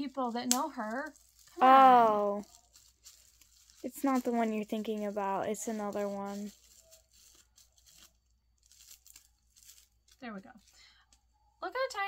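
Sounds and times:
plastic wrapping crinkling and tearing: 0:00.0 - 0:12.0.

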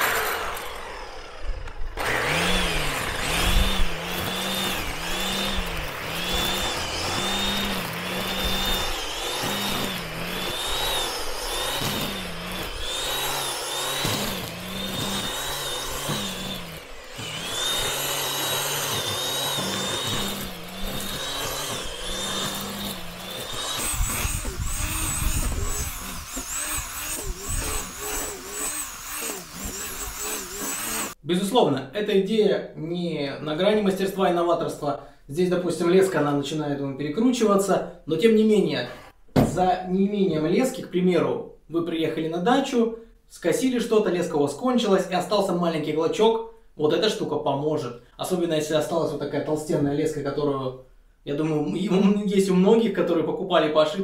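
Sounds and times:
string trimmer cutting grass: 0:00.0 - 0:31.2.

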